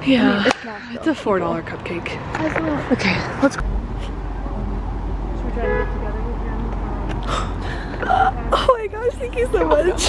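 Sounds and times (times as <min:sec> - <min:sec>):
low rumble of traffic: 0:00.0 - 0:10.0.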